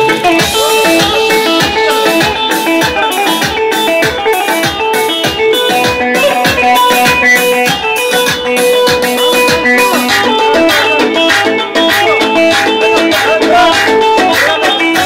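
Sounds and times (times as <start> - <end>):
plucked-string keyboard melody: 0.0 - 15.0
steady drum beat: 0.0 - 15.0.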